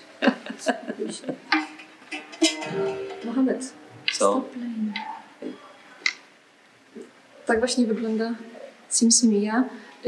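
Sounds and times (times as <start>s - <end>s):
low room sound: 0.0s - 10.0s.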